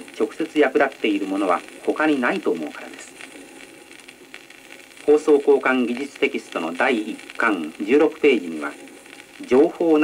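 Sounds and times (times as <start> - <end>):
low steady record hiss: 0.0 - 10.0.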